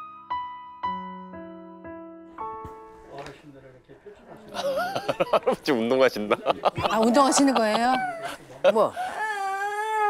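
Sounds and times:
toddler whining: 0:09.0 - 0:10.0.

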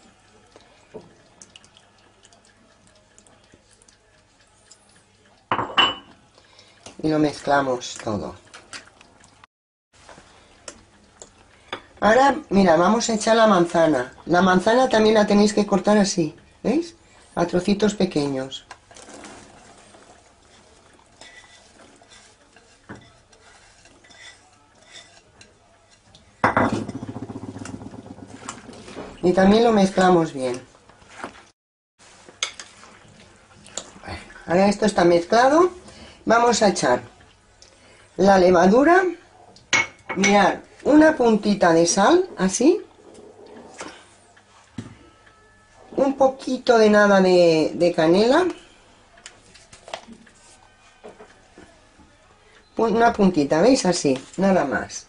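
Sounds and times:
utensil scraping glass bowl: 0:19.0 - 0:26.1.

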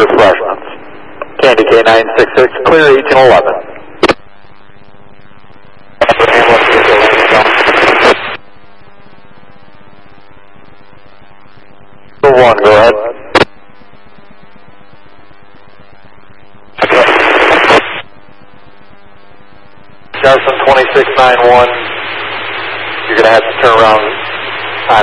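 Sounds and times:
garbled radio transmission: 0:00.0 - 0:25.0
radio static bursts: 0:00.0 - 0:25.0
steady hum: 0:00.0 - 0:25.0.

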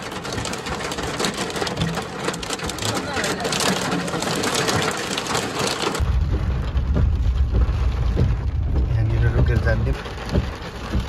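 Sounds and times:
car engine rumble: 0:00.0 - 0:11.0
heavy rain on car roof: 0:00.0 - 0:11.0
road noise: 0:00.0 - 0:11.0.

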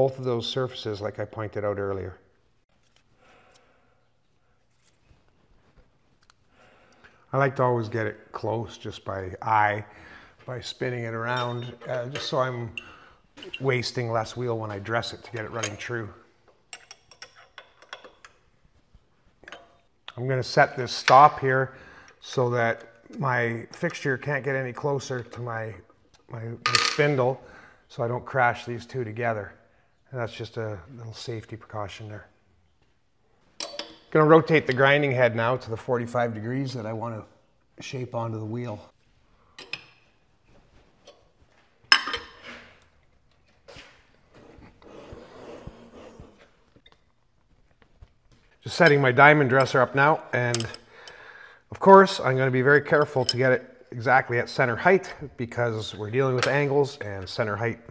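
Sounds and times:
wrench clinking on metal: 0:11.2 - 0:13.8, 0:15.3 - 0:15.9, 0:16.6 - 0:18.4, 0:33.6 - 0:34.1, 0:39.6 - 0:40.0, 0:41.9 - 0:42.4, 0:50.4 - 0:51.2.

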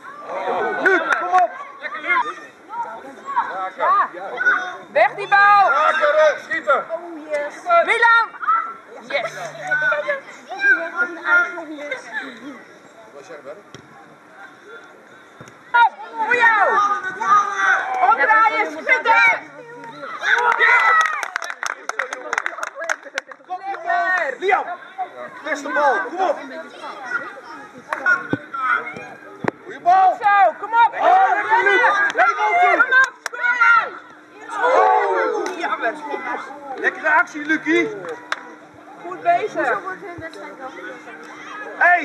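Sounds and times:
young players shouting: 0:00.0 - 0:12.3, 0:15.6 - 0:21.5, 0:23.5 - 0:39.9.

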